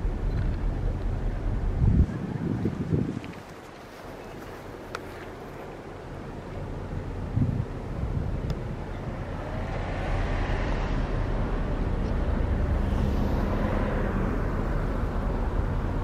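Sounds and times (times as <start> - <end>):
wind on microphone: 0.0 - 5.2, 6.8 - 16.0
low engine rumble: 0.0 - 16.0.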